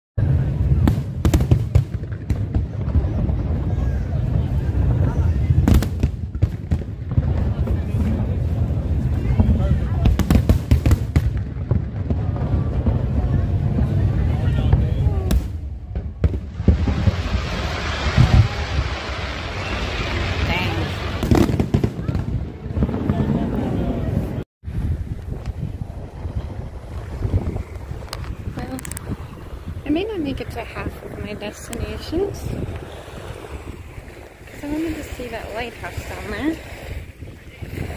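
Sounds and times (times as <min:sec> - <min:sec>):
fireworks bangs and booms: 0:00.2 - 0:24.8
voices: 0:27.7 - 0:32.9, 0:34.4 - 0:37.9.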